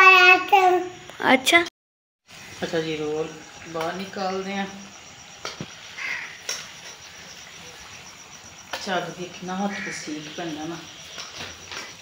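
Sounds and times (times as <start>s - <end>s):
faint steady background noise: 2.3s - 12.0s.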